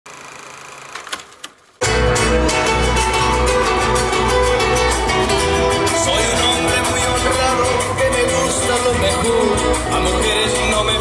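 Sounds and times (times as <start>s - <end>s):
loud music: 1.8s - 11.0s.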